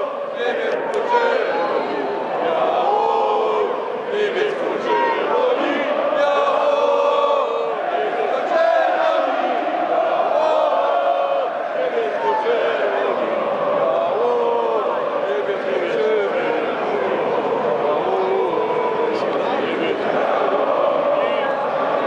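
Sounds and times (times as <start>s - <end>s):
stadium crowd chanting: 0.0s - 22.0s.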